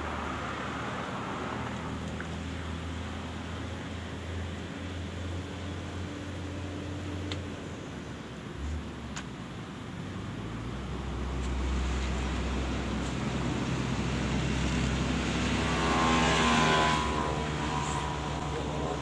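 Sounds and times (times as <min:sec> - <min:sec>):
engine passing by: 0:10.2 - 0:19.0.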